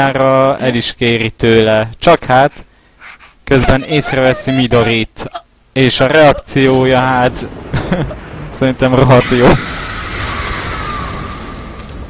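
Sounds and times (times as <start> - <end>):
cartoon character yelling: 3.5 - 5.4
rushing noise: 9.1 - 12.0.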